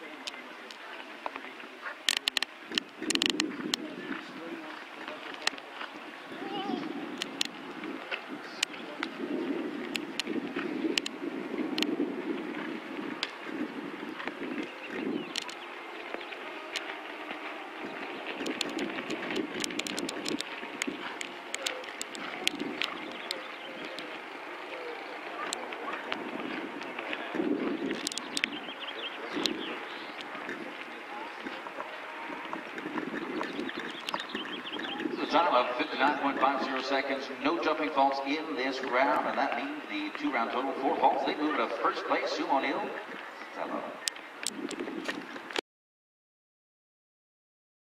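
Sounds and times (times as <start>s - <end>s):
murmur of distant voices: 0.0s - 45.6s
sharp clicks: 2.1s - 3.5s, 9.9s - 11.9s, 14.2s - 15.6s, 18.1s - 24.2s, 27.8s - 28.6s, 33.3s - 35.0s
wind on microphone: 2.2s - 45.6s.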